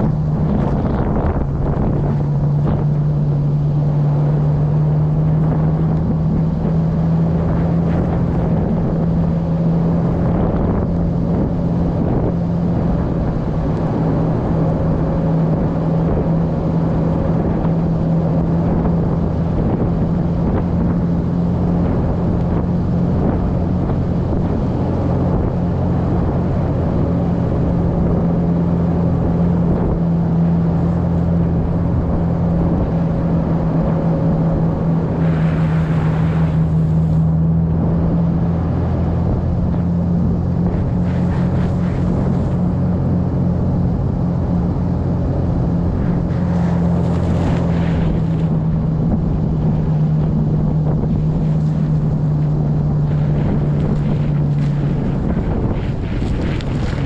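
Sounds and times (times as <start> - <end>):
car engine droning: 0.0 - 57.0
wind noise on microphone: 0.0 - 57.0.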